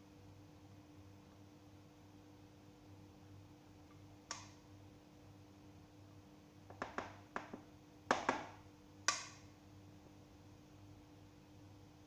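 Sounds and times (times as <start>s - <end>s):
faint steady hum: 0.0s - 12.0s
plastic bowl knocking: 6.7s - 8.6s.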